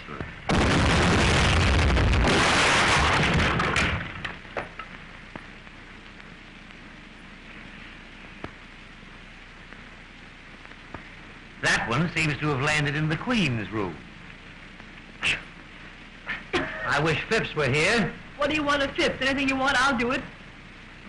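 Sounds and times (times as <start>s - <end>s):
faint hiss: 0.0s - 21.0s
artillery shell explosion: 0.5s - 4.8s.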